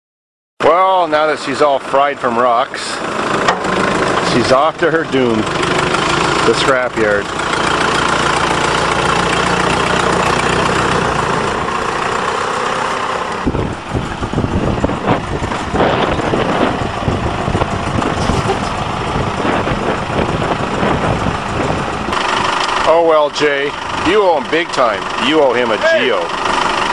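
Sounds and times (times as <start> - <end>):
backhoe engine running: 0.6 - 26.9.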